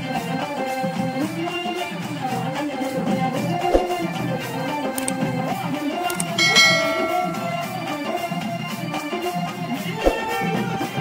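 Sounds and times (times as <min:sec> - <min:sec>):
devotional music with drums: 0:00.0 - 0:11.0
short click: 0:05.0 - 0:05.2, 0:06.1 - 0:07.7
bright bell ding: 0:06.1 - 0:08.2.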